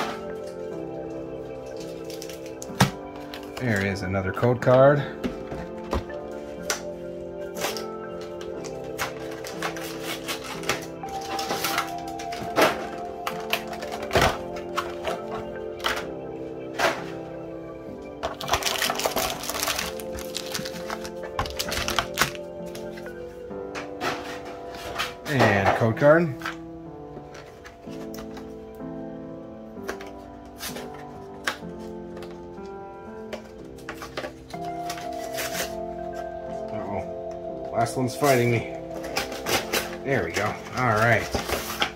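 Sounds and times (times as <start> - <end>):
plastic wrapping crinkling: 0.0 - 4.5, 5.4 - 16.2, 18.0 - 26.6, 29.8 - 37.0, 38.1 - 41.9
background music: 0.0 - 41.9
cardboard boxes clicking and thunking: 18.3 - 23.0, 39.0 - 41.9.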